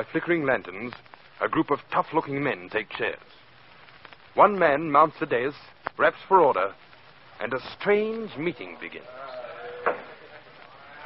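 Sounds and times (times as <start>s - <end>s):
men's voices in a room: 0.0s - 3.6s, 4.3s - 11.0s.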